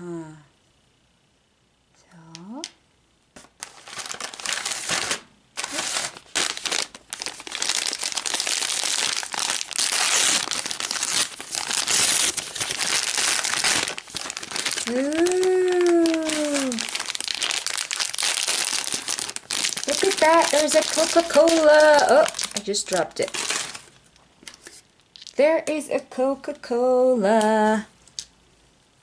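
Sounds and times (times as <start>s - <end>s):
plastic packaging crinkling: 3.4s - 25.4s.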